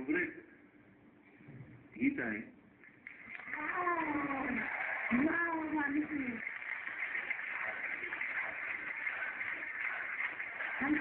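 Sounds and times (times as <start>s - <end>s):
audience applauding: 2.9s - 11.0s.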